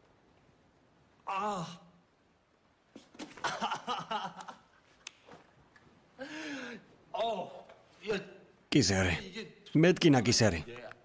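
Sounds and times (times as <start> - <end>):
man sighing: 6.2 - 7.0.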